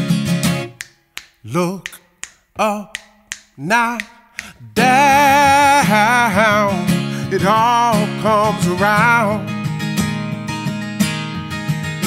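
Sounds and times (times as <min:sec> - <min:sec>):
acoustic guitar strumming: 0:00.0 - 0:01.8, 0:03.0 - 0:12.0
finger snaps: 0:00.4 - 0:04.8
person singing: 0:01.4 - 0:09.5.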